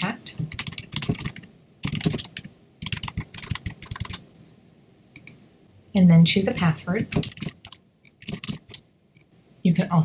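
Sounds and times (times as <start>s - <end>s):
typing on computer keyboard: 0.5s - 4.2s, 7.1s - 8.8s.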